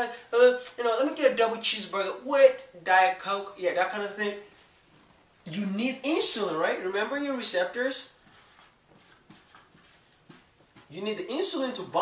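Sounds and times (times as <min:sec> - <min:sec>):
marker drawing on whiteboard: 0:06.2 - 0:12.0.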